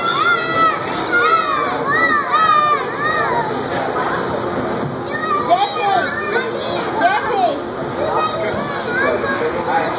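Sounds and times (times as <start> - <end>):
children shrieking: 0.0 - 3.5.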